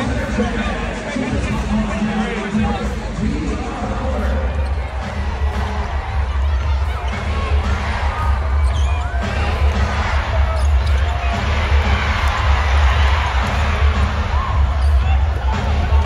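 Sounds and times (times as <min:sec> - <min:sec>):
bass-heavy music: 0:00.0 - 0:16.0
crowd chatter: 0:00.0 - 0:16.0
sneakers squeaking on court: 0:04.1 - 0:05.6, 0:06.5 - 0:09.4, 0:10.1 - 0:13.6, 0:14.5 - 0:15.7
basketball bouncing: 0:04.1 - 0:16.0.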